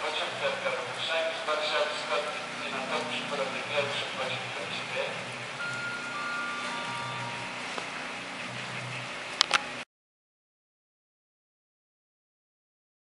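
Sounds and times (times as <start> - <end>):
announcement over loudspeaker: 0.0 - 8.8
descending three-note chime: 2.6 - 8.6.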